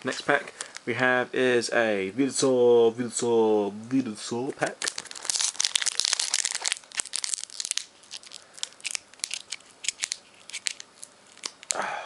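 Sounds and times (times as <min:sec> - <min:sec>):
foil wrapper tearing and crinkling: 0:04.6 - 0:11.8.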